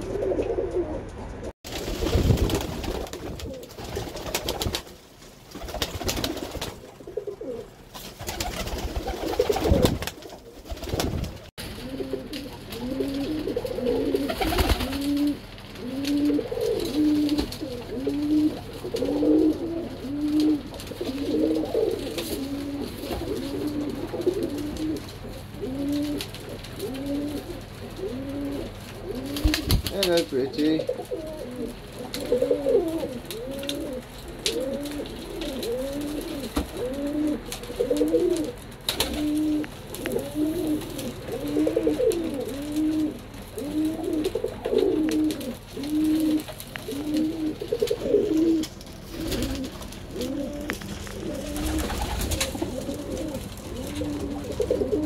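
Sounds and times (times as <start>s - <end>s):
pigeons cooing: 0.0s - 4.8s, 5.5s - 55.0s
rustling and scuffling: 7.9s - 55.0s.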